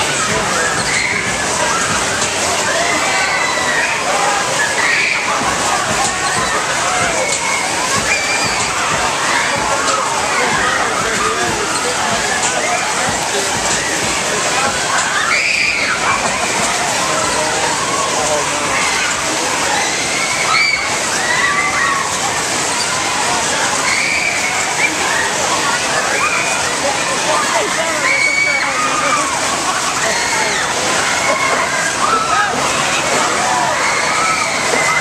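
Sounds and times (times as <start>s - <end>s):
carnival ride running: 0.0s - 35.0s
crowd voices: 0.0s - 35.0s
riders shrieking: 0.5s - 1.9s, 18.7s - 23.0s, 23.8s - 26.6s.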